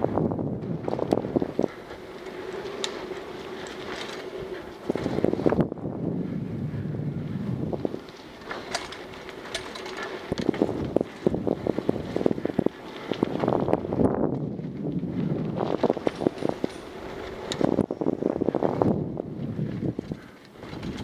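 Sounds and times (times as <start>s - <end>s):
wind on microphone: 0.0s - 2.2s, 4.3s - 9.2s, 10.1s - 21.0s
tyres rolling over dirt: 0.0s - 6.0s, 7.4s - 21.0s
bike rattling and clacking: 0.0s - 21.0s.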